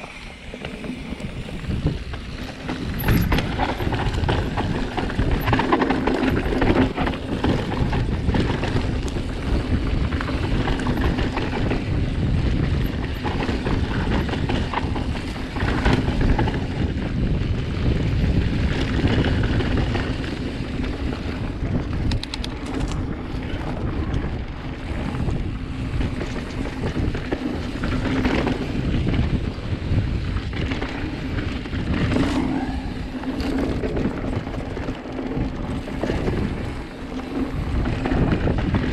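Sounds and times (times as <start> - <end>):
bike rattling over bumps: 0.0 - 38.9
tyres rolling over dirt: 0.0 - 38.9
wind buffeting microphone: 0.0 - 38.9
fast ticks: 18.3 - 25.2.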